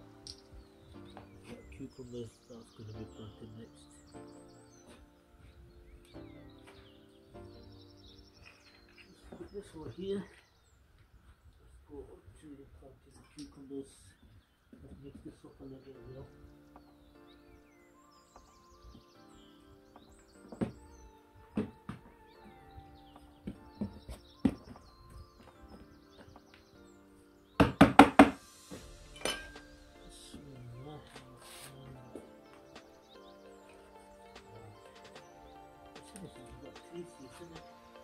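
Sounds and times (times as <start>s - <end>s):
background music sustained notes: 0.0s - 38.0s.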